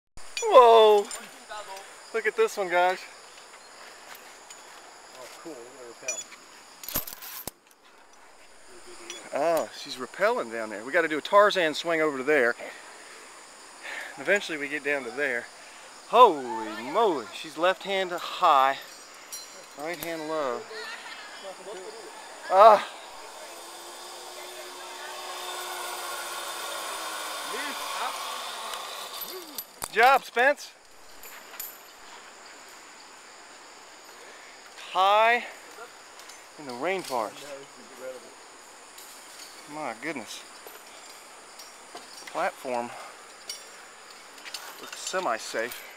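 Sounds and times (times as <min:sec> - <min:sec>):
zip-line pulley whirring on cable: 0:22.4 - 0:29.6.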